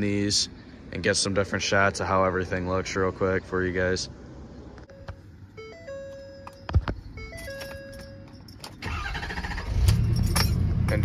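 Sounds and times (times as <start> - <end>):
diesel engine starting and idling: 7.1 - 11.0.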